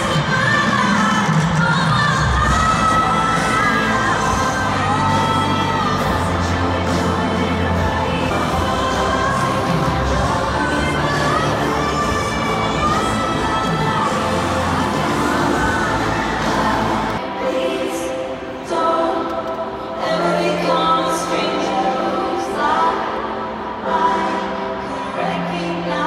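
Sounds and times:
live pop concert music: 0:00.0 - 0:26.0
person singing: 0:00.0 - 0:26.0.

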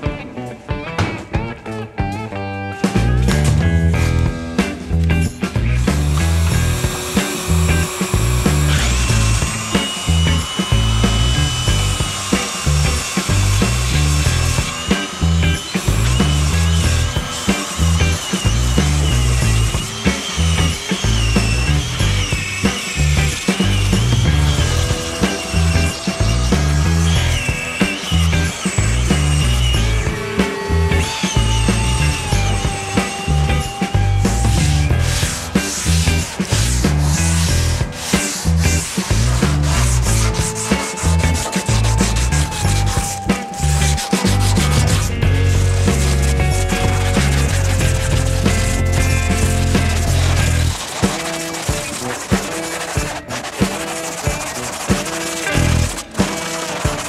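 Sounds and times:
background music with steady beat: 0:00.0 - 0:57.0
electric sanders on plywood: 0:05.0 - 0:57.0.

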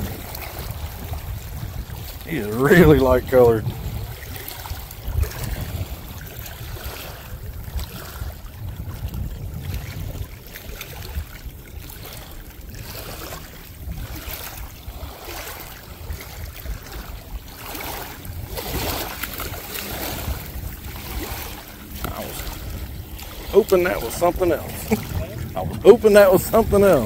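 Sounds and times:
small waves lapping: 0:00.0 - 0:27.0
wind buffeting the microphone: 0:00.0 - 0:27.0.

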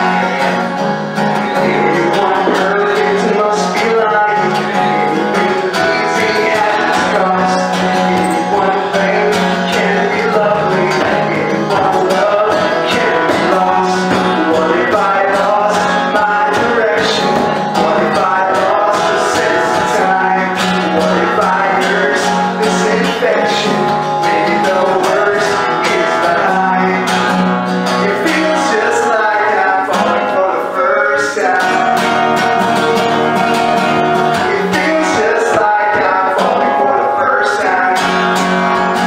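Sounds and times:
acoustic guitar strummed: 0:00.0 - 0:39.0
man singing: 0:00.0 - 0:39.0.

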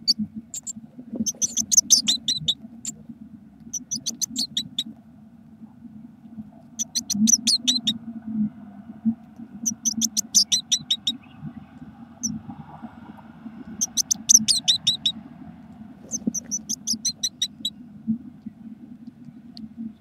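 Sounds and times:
low steady hum: 0:00.0 - 0:20.0
nestlings begging calls: 0:00.6 - 0:02.6, 0:03.7 - 0:04.8, 0:06.8 - 0:07.9, 0:09.6 - 0:11.2, 0:13.8 - 0:15.1, 0:16.0 - 0:17.7.

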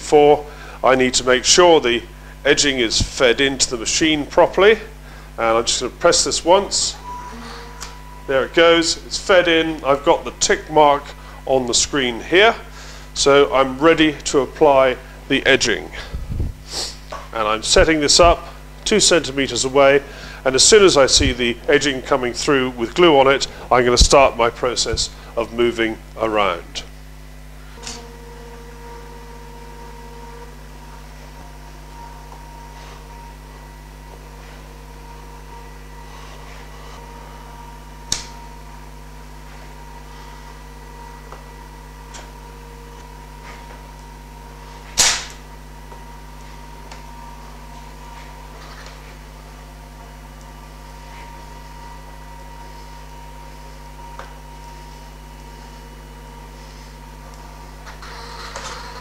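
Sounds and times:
edge bander humming: 0:00.0 - 0:59.0.

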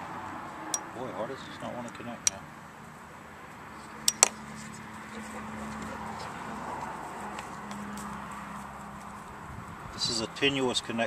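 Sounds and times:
sharp metallic clicks: 0:04.0 - 0:04.4.

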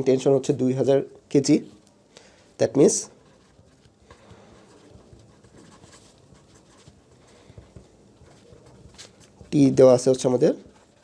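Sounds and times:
pen scratching on paper: 0:03.1 - 0:11.0.

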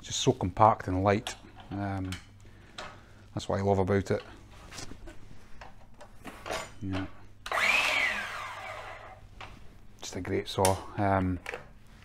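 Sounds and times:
mitre saw motor whining: 0:07.5 - 0:09.2.

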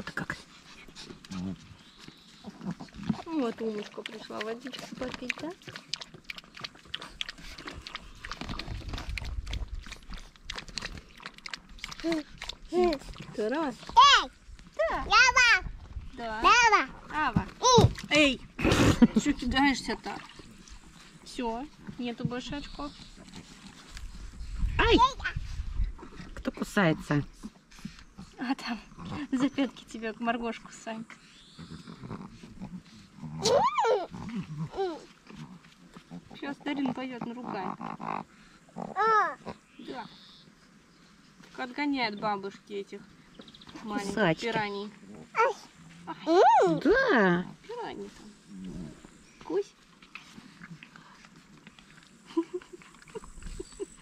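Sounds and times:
dog lapping water: 0:00.9 - 0:14.1, 0:16.8 - 0:27.2
puppy yelping: 0:33.4 - 0:34.1.

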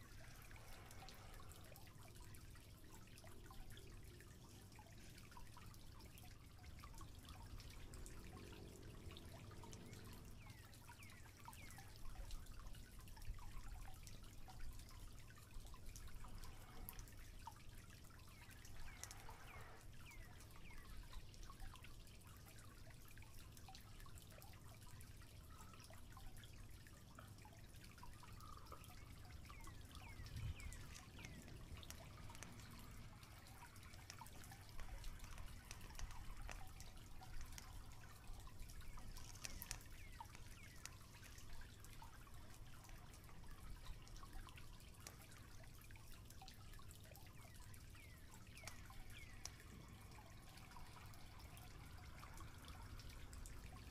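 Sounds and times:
faint ticks: 0:00.0 - 0:53.9
low steady rumble: 0:00.0 - 0:53.9.

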